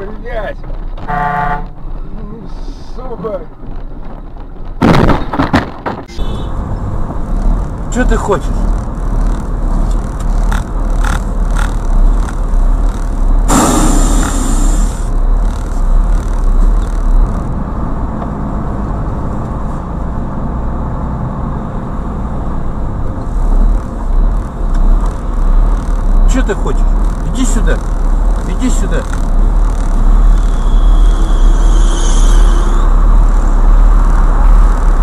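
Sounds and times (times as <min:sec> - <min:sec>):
car road and engine rumble: 0:00.0 - 0:35.0
loud hiss: 0:13.5 - 0:15.0.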